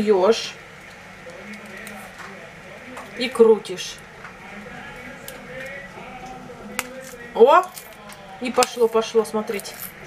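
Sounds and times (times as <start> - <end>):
key opener winding tin strip: 6.8 - 10.0.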